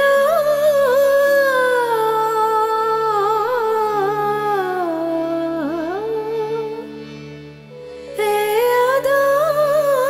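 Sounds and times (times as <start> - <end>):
harmonium chords: 0.0 - 10.0.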